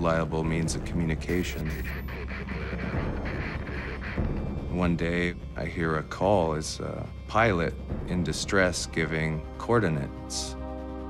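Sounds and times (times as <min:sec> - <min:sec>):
low rumbling drone: 0:00.0 - 0:08.1.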